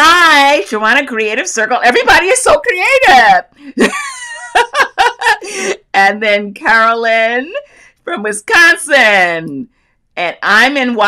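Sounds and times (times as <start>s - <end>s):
woman laughing: 3.6s - 6.0s.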